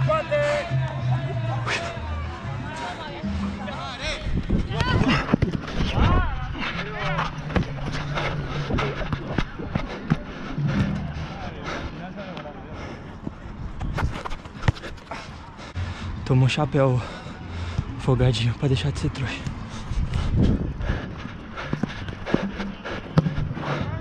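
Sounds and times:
running footsteps: 4.2s - 16.0s, 19.4s - 24.0s.

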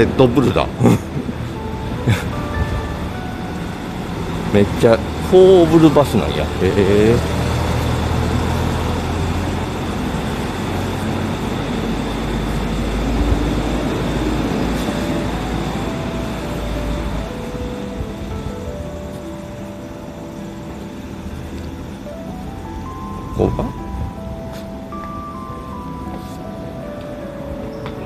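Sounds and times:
bus engine: 0.0s - 28.0s
music of held notes: 0.0s - 28.0s
road noise: 0.0s - 28.0s.

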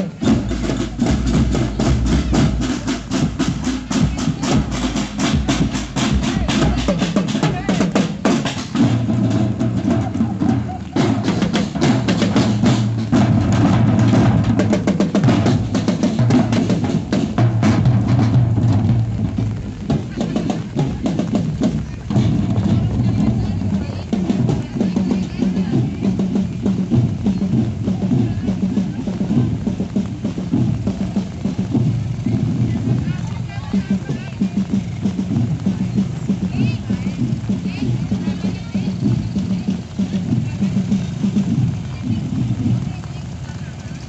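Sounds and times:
marching drum band playing: 0.0s - 44.0s.

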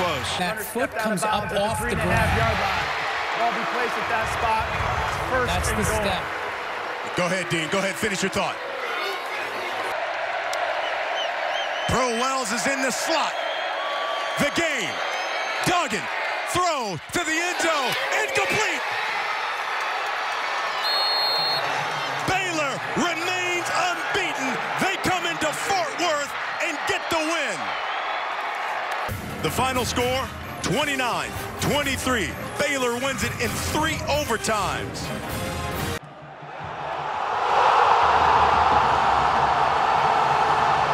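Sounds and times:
stadium crowd roaring: 0.0s - 40.9s
high whistle tone: 20.8s - 21.7s.

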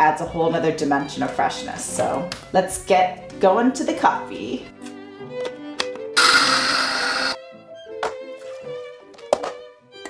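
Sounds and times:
electric coffee grinder grinding: 6.2s - 7.4s.

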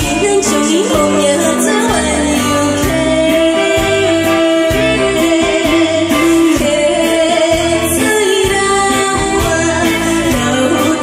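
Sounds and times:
instrumental accompaniment with beat: 0.0s - 11.0s
woman singing into a microphone: 0.0s - 11.0s.

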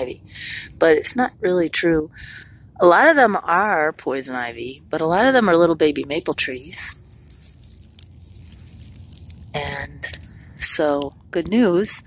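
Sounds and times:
faint rustling: 4.8s - 12.0s.

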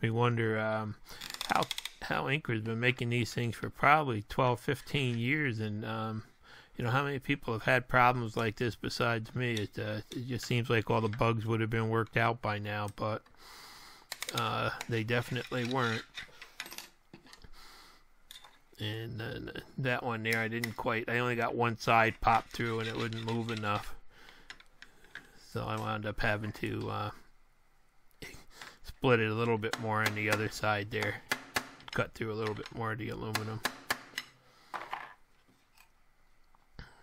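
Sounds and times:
small handling clicks: 1.2s - 2.0s, 14.1s - 17.5s.

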